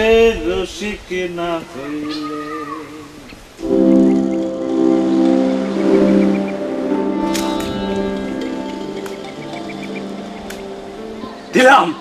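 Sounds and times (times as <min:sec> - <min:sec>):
sustained music chord: 0:03.6 - 0:12.0.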